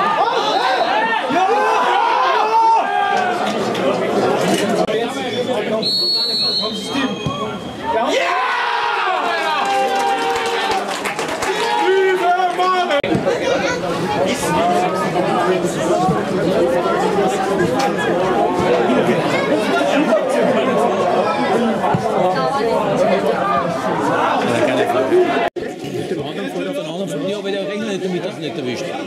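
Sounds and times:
crowd chattering: 0.0 - 29.0.

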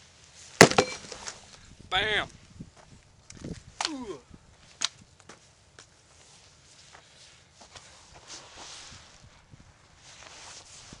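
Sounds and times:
footsteps scuffing on wood chips: 4.6 - 9.3.

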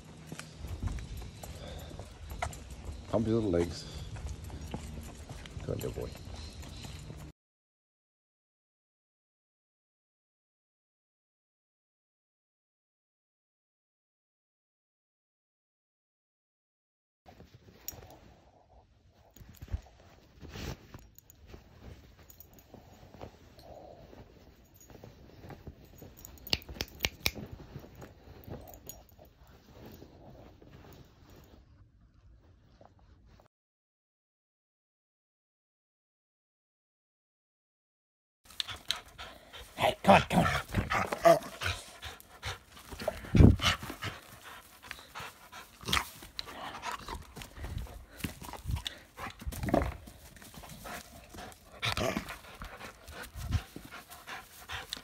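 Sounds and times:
dog panting: 38.5 - 55.0.

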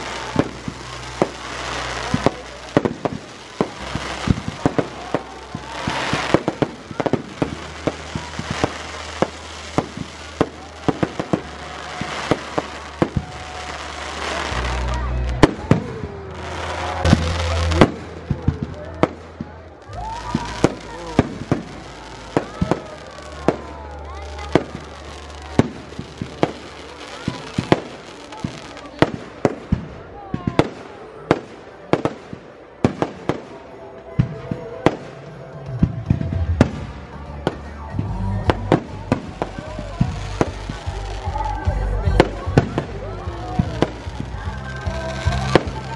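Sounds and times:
firework bangs: 0.0 - 45.9
fireworks crackling: 0.0 - 45.9.

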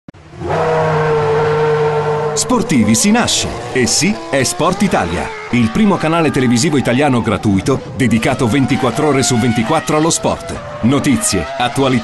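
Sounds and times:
race car engine at high revs: 0.2 - 12.0.

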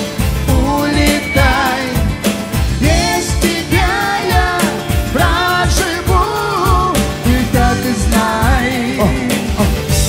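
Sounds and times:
melodic lead line: 0.0 - 10.0
steady drum beat: 0.0 - 10.0.

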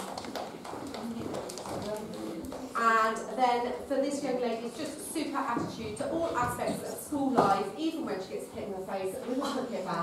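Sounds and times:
child's footsteps on floor: 0.0 - 2.8
quiet voices murmuring: 0.0 - 10.0.

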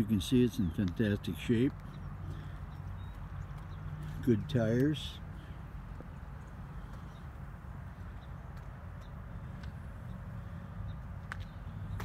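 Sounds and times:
soft scattered clicks: 0.7 - 7.4.

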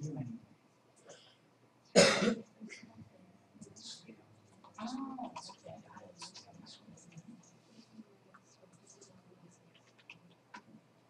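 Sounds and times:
faint small clicks and rustles: 4.4 - 10.9.

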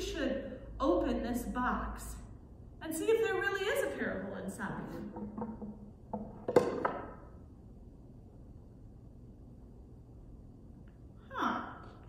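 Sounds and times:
box knocking on floor: 5.1 - 7.0.

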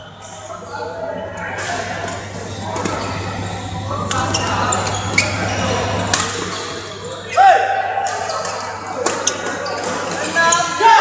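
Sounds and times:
indistinct voices: 0.0 - 11.0
steady low hum: 1.1 - 8.0
shoes squeaking on court floor: 1.6 - 7.3, 8.2 - 10.8.

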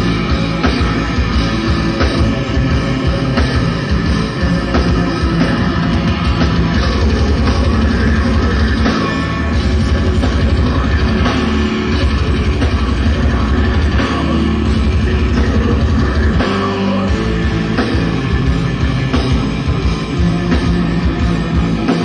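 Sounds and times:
distorted electric guitars: 0.0 - 22.0
driving kick drums: 0.0 - 22.0
heavy metal band playing live: 0.0 - 22.0.

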